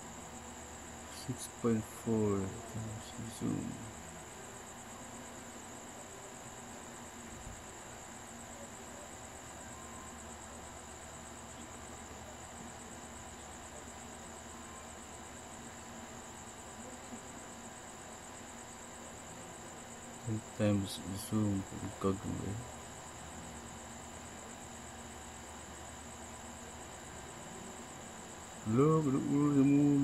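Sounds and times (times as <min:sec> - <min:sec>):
crickets trilling: 0:00.0 - 0:30.0
faint background hiss: 0:00.0 - 0:30.0.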